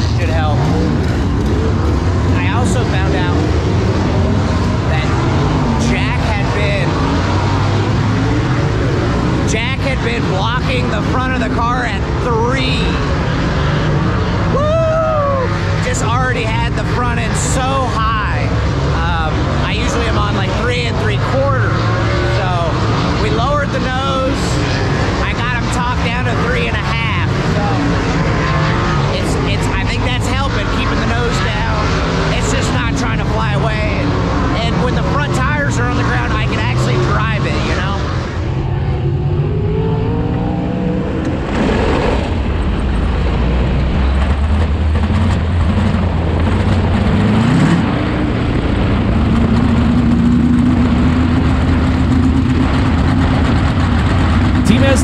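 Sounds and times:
man speaking: 0.0 - 1.1, 2.2 - 3.6, 4.8 - 7.2, 9.4 - 13.2, 14.6 - 28.0, 29.1 - 38.2, 54.6 - 55.0
race car engine running: 0.0 - 55.0.

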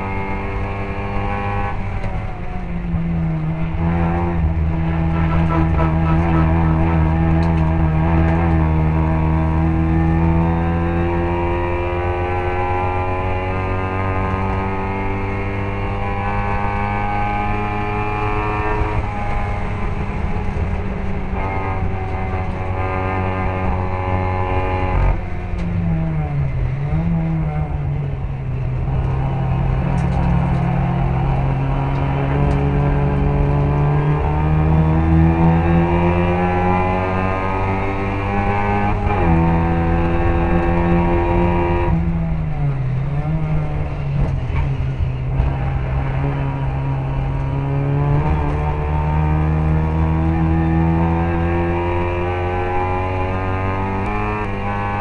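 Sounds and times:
racing car engine at high revs: 0.0 - 55.0.

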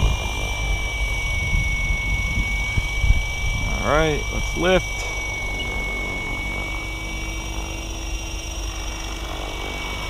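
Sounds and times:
helicopter motor whine: 0.0 - 10.0
rotor noise: 0.0 - 10.0
wind rumbling on microphone: 0.0 - 10.0.

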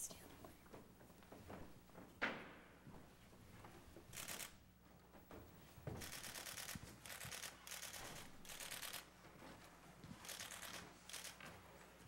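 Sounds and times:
rapid camera shutter clicks: 4.1 - 4.6, 6.0 - 9.1, 10.2 - 11.4.

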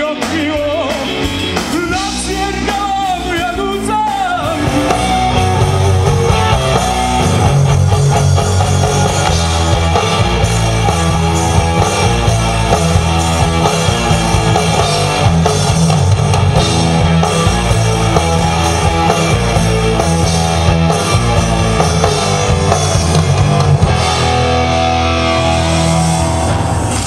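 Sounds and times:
drum kit: 0.0 - 27.0
electric guitar: 0.0 - 27.0.

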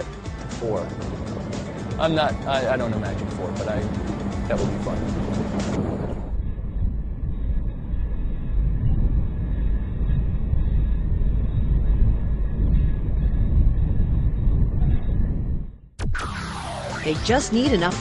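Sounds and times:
wind buffeting microphone: 0.7 - 15.9.

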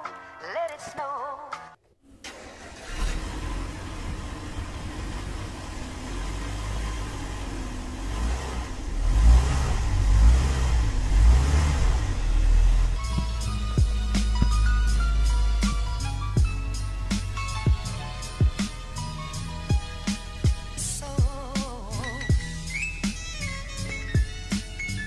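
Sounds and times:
car engine starting and running: 2.0 - 25.0.

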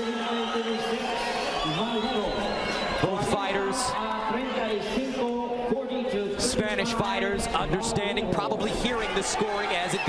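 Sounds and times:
man announcing over loudspeaker: 0.0 - 10.0.

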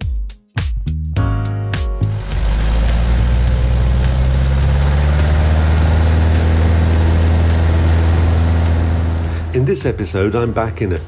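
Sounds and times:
small plane engine and propeller: 2.0 - 11.0.

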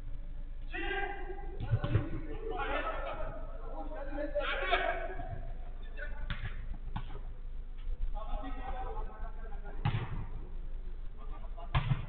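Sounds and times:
men calling out: 0.7 - 5.6
football being kicked: 1.6 - 2.2, 6.3 - 7.2, 9.8 - 10.3, 11.7 - 12.0.

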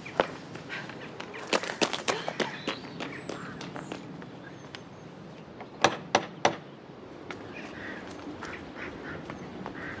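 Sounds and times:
duck-like quacks: 7.8 - 10.0.

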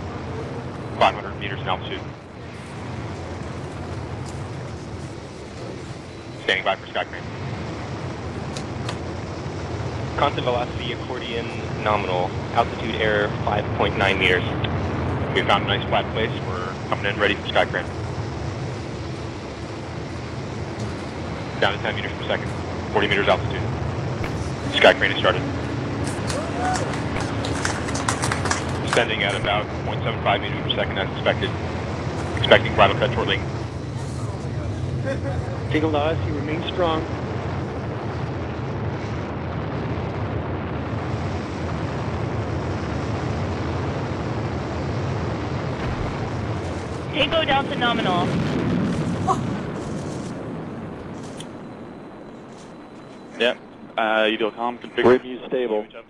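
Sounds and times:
audio feed hiss and hum: 0.0 - 56.0
rocket engine roar: 0.0 - 56.0.

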